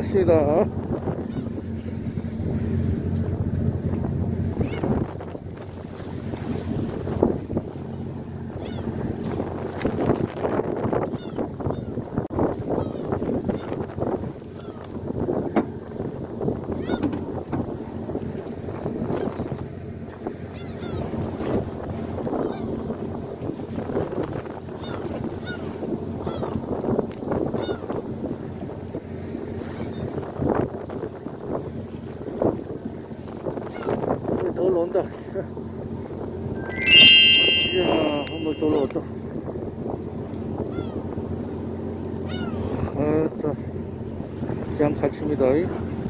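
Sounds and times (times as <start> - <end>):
loud high-pitched tone: 36.6 - 38.9.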